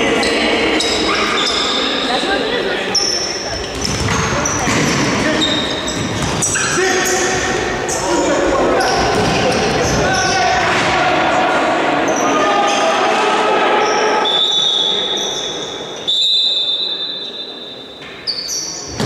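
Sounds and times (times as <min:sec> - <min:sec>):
sneakers squeaking on floor: 0:00.0 - 0:10.5, 0:13.8 - 0:19.0.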